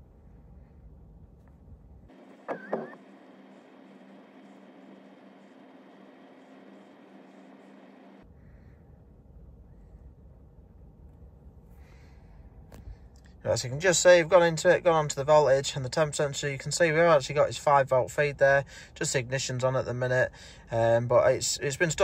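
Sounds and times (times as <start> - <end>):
faint background hum: 0.0 - 22.0.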